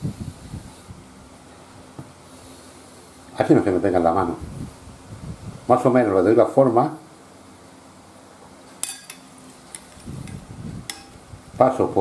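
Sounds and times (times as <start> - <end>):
utensil clinking glass bowl: 8.8 - 9.3.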